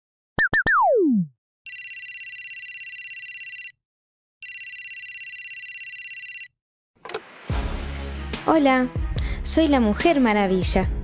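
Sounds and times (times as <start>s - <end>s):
telephone ringing: 1.7s - 3.8s, 4.4s - 6.6s.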